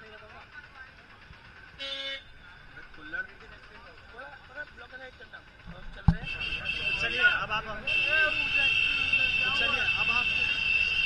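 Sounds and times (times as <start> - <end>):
vehicle horn toot: 1.8 - 2.4, 6.2 - 11.0.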